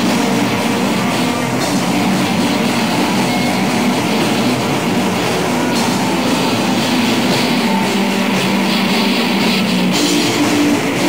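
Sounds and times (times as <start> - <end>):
distorted guitar: 0.0 - 11.0
drum kit: 0.0 - 11.0.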